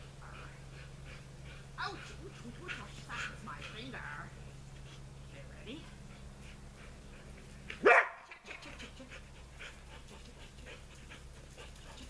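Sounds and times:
dog barking: 7.8 - 8.3.

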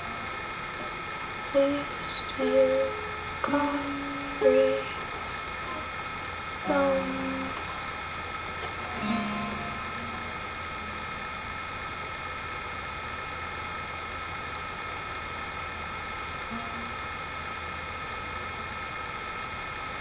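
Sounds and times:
steady hum and hiss: 0.0 - 20.0
thin high whine: 0.0 - 20.0.

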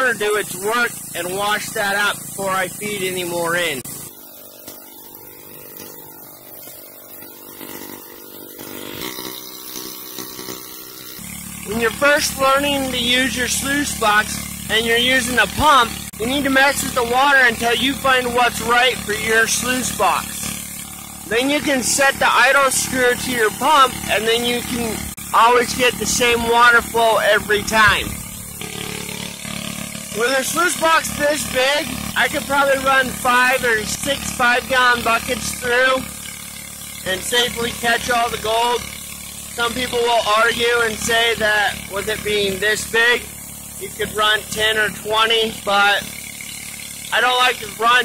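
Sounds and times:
small gasoline engine running: 0.0 - 48.0
water splashing: 0.4 - 40.4.

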